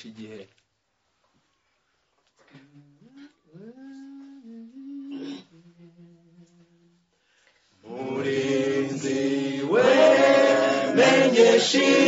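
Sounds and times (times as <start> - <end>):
person singing without words: 2.6 - 7.1.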